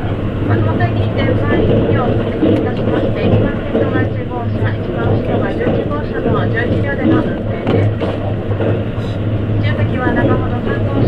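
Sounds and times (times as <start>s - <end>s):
steady low hum: 0.0s - 11.0s
train wheels rumbling on rails: 0.0s - 11.0s.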